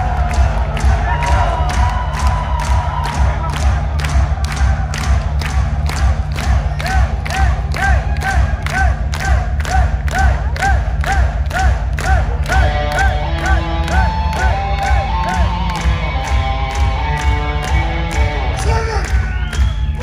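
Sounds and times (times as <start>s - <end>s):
crowd cheering: 0.0s - 20.0s
drum beat: 0.0s - 20.0s
distorted guitars: 12.4s - 19.4s.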